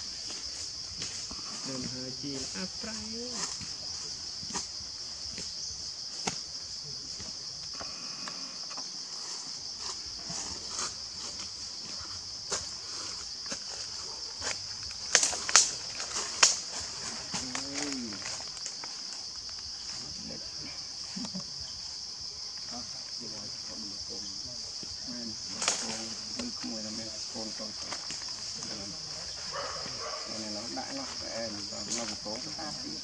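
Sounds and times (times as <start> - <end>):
insects droning: 0.0 - 33.0.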